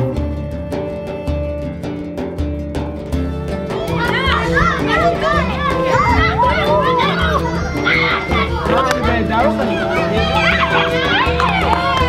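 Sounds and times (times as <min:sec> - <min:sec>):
background music with bass: 0:00.0 - 0:12.0
children shouting at play: 0:03.6 - 0:12.0.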